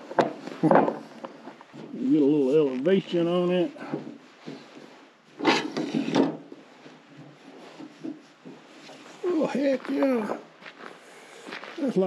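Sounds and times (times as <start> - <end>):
short scraping rubbing sounds: 5.4 - 6.3.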